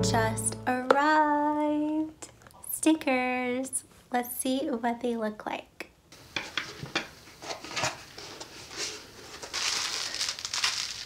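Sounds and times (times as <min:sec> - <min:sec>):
soft background music: 0:00.0 - 0:01.0
woman singing one steady note: 0:00.0 - 0:01.0.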